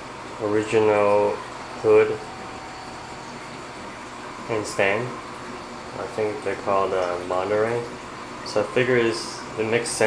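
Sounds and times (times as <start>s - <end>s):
aquarium water circulation hiss: 0.0s - 10.0s.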